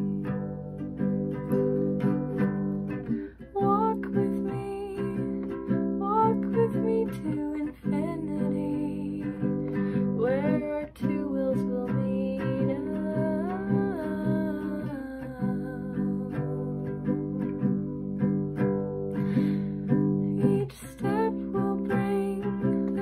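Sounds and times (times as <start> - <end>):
acoustic guitar chords: 0.0 - 23.0
woman singing: 2.9 - 18.2, 19.2 - 23.0.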